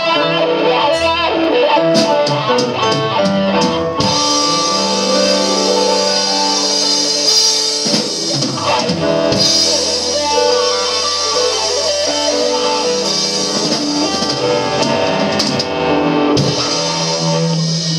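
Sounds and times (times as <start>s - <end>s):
live blues band playing: 0.0s - 17.9s.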